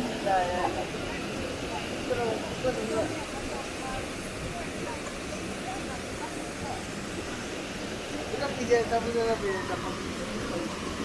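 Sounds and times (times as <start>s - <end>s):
faint voices talking: 0.0s - 11.0s
waterfall rushing: 0.0s - 11.0s.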